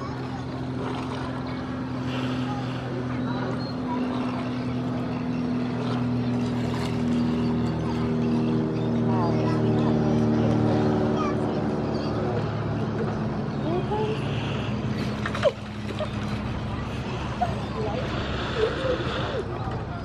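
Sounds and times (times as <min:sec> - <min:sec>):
higher engine tone: 0:00.0 - 0:20.0
motorboat engine humming: 0:00.0 - 0:20.0.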